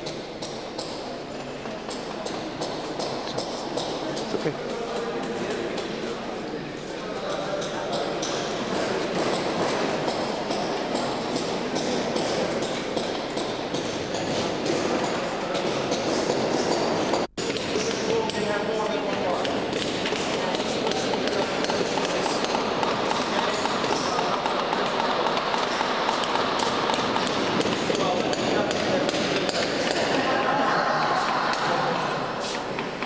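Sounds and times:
murmur of voices: 0.0s - 33.0s
hand tools tapping on stones: 19.1s - 30.2s.

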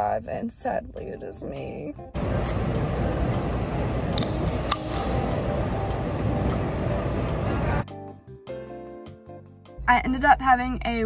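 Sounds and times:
drink can opening: 2.4s - 2.8s, 4.1s - 5.3s.

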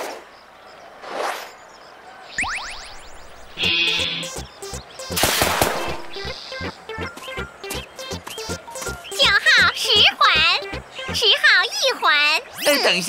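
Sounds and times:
cartoon music with rhythmic beat: 3.6s - 11.6s.

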